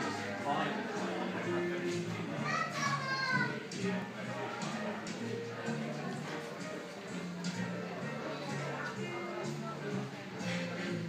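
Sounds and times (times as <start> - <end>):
overlapping voices chatter: 0.0 - 11.0.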